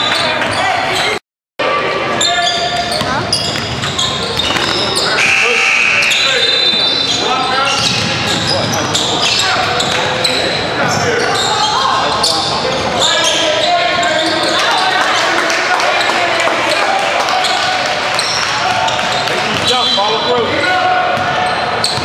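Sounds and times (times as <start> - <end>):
shouting and chatter: 0.0 - 22.0.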